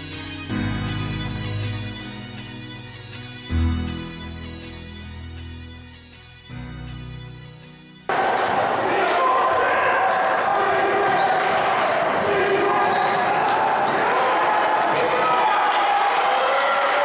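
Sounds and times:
echoing voices in a gym: 0:08.1 - 0:17.0.

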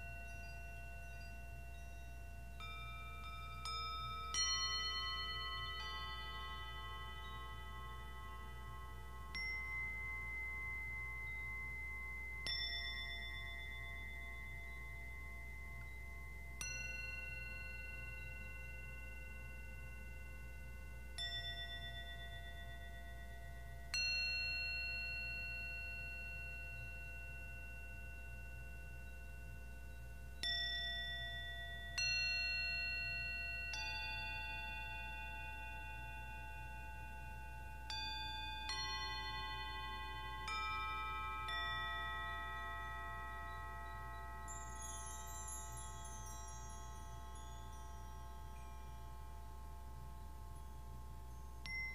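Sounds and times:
metal bowls struck with mallet: 0:00.0 - 0:23.1, 0:45.6 - 0:51.9.

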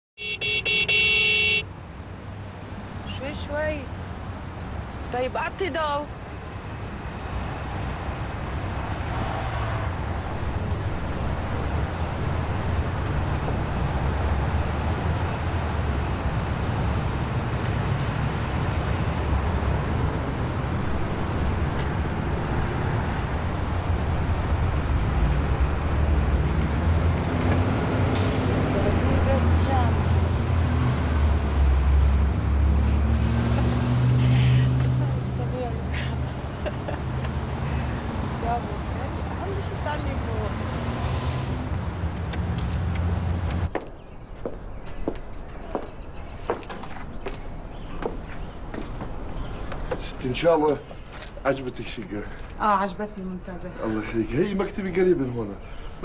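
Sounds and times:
street traffic noise: 0:00.2 - 0:56.0.

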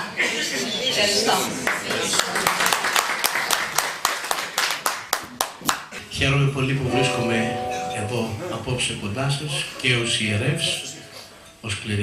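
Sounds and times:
audience applauding: 0:01.6 - 0:05.9.

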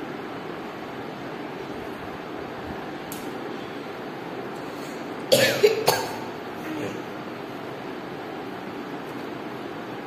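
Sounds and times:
girl coughing: 0:05.3 - 0:06.3.

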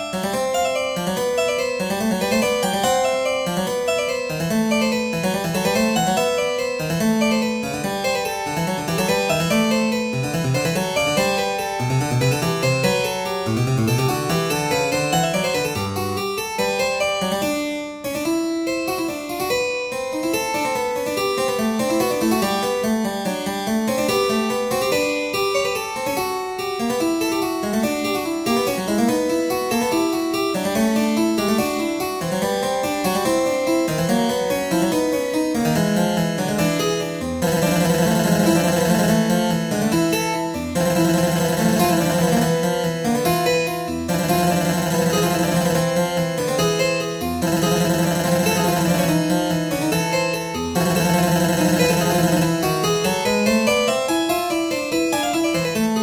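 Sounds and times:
harpsichord music: 0:00.0 - 0:56.0.

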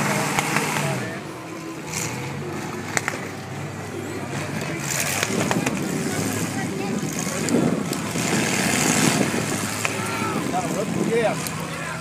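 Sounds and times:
car engines running: 0:00.0 - 0:12.0
crowd chatter: 0:00.0 - 0:12.0.

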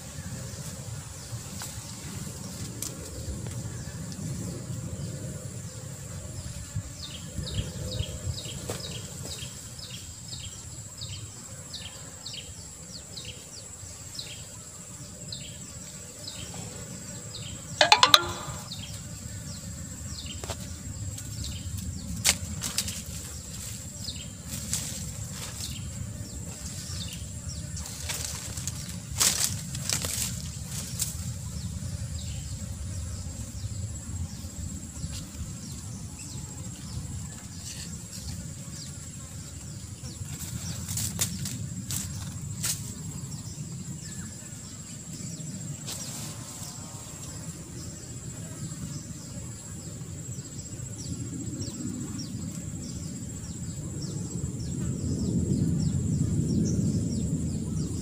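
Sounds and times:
high insect drone: 0:00.0 - 0:58.0
knocks: 0:17.8 - 0:18.7
short high chirps: 0:17.8 - 0:18.7
rustling in dry leaves: 0:21.8 - 0:27.1, 0:27.7 - 0:31.5, 0:40.2 - 0:43.1, 0:45.8 - 0:47.2.

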